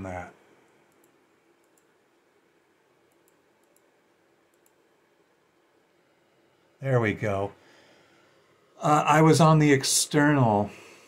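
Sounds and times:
faint computer mouse clicks: 0:00.6 - 0:02.0, 0:03.1 - 0:03.9, 0:04.5 - 0:04.8.

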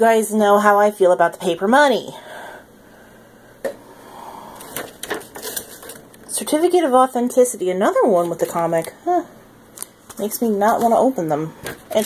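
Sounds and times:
paper and cardboard rustling: 0:04.6 - 0:06.1, 0:10.1 - 0:12.0.

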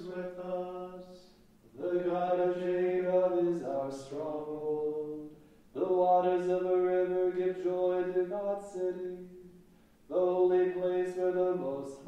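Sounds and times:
liturgical chant: 0:00.0 - 0:12.0.

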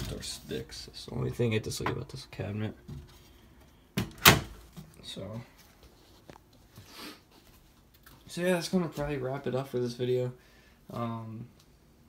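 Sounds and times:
cabinet door thud: 0:04.0 - 0:04.6.

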